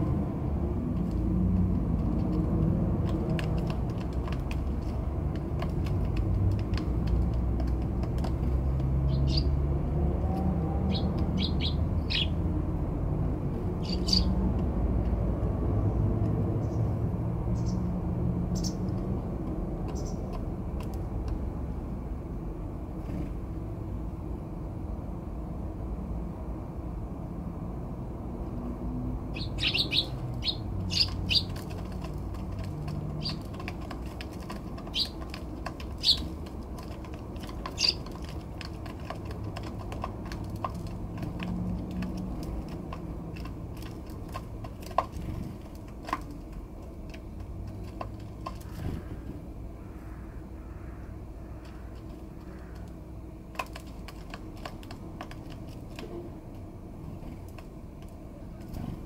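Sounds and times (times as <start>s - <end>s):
sparrows chirping: 8.4s - 9.7s, 10.8s - 12.5s, 13.7s - 14.4s, 16.5s - 19.0s, 19.9s - 20.5s, 29.2s - 43.4s.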